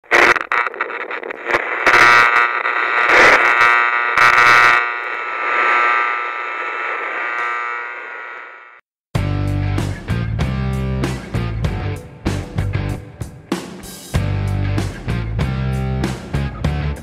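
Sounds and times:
crackling bursts of noise: 0.0s - 8.9s.

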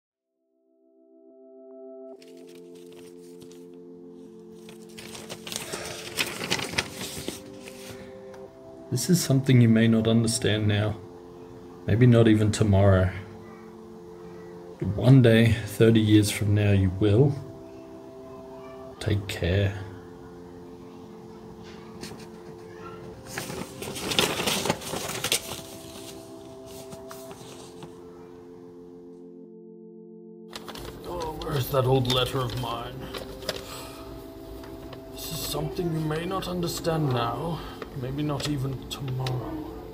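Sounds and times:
quiet ambient music: 0.4s - 39.9s
paper rustling and crinkling: 2.2s - 8.4s, 21.6s - 28.3s, 30.5s - 39.7s.

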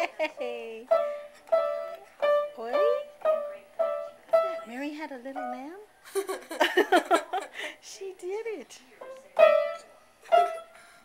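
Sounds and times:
piano single notes: 0.9s - 4.8s, 9.0s - 10.8s.

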